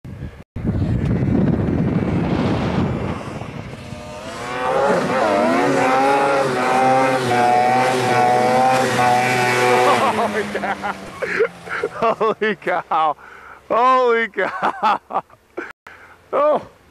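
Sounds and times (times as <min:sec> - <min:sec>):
low rushing noise: 0:00.1 - 0:12.6
snowmobile engine whining: 0:00.6 - 0:15.0.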